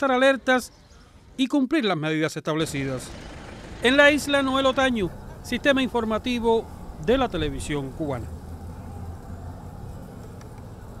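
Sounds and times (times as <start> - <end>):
street ambience: 0.0 - 11.0
vehicle engine idling: 2.6 - 11.0.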